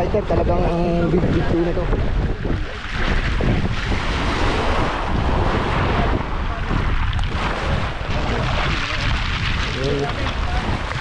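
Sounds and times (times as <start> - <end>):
wind buffeting microphone: 0.0 - 11.0
small waves washing: 0.1 - 11.0.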